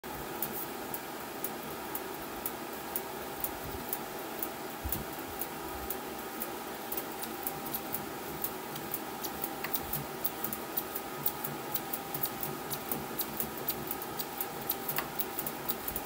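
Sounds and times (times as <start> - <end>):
machine humming with light ticks: 0.0 - 16.0.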